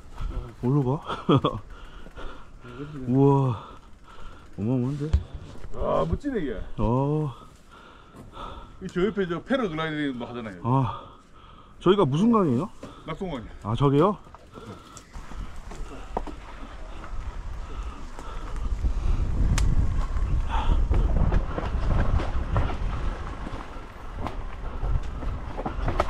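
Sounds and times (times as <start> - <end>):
clicks and rattles over rocks: 0.0 - 8.3, 12.2 - 26.0
bike tyres rumbling on dirt: 0.0 - 8.7, 12.1 - 26.0.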